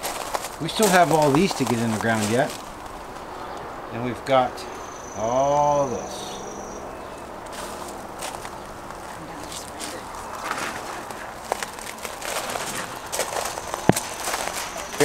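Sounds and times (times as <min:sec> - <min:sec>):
footsteps on gravel: 0:00.0 - 0:03.6, 0:07.1 - 0:15.0
steady outdoor hiss: 0:00.0 - 0:15.0.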